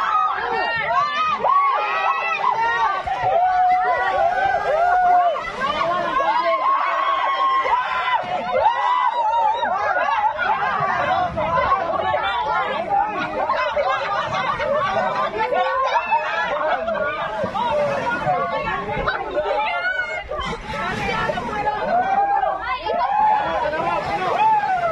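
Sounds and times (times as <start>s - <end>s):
crowd shouting and cheering: 0.0s - 24.9s.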